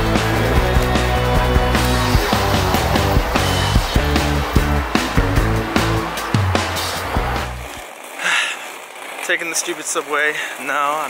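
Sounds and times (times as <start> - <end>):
background music with heavy bass: 0.0 - 7.8.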